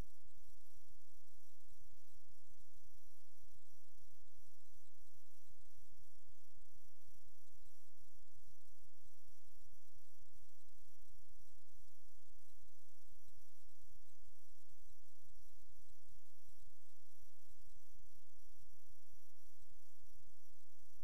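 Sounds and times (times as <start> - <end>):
faint high-pitched whines: 0.0 - 21.0
low electrical hum with hiss: 0.0 - 21.0.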